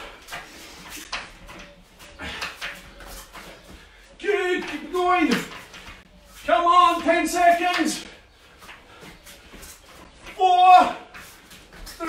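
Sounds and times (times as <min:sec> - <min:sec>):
man breathing hard: 0:02.1 - 0:02.7.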